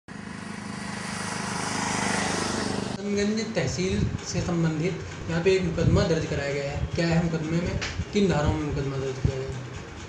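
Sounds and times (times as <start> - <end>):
vehicle engine running: 0.1 - 10.0.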